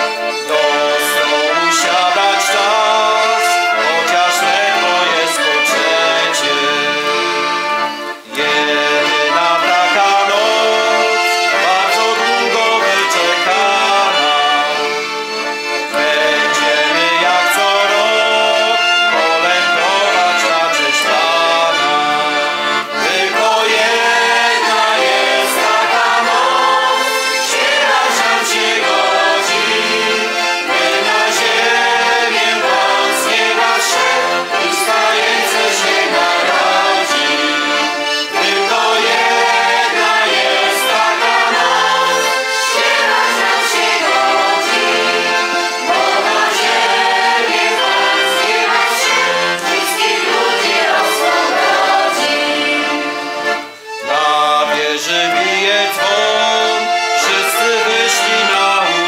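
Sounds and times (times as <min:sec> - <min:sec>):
bagpipes droning: 0:00.0 - 0:59.0
man and choir singing: 0:00.0 - 0:59.0.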